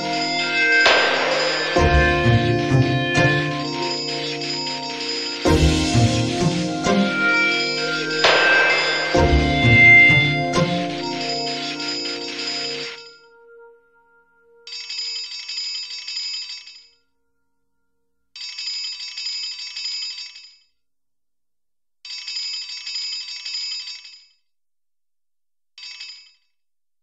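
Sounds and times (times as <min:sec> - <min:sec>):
telephone ringing: 0:00.0 - 0:13.9, 0:14.6 - 0:16.9, 0:18.4 - 0:20.5, 0:25.8 - 0:26.4
song: 0:00.0 - 0:14.7.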